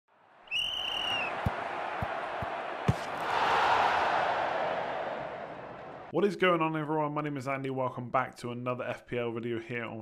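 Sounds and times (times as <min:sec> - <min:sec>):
whistle blast: 0:00.5 - 0:01.4
ball bouncing thud: 0:01.3 - 0:03.2.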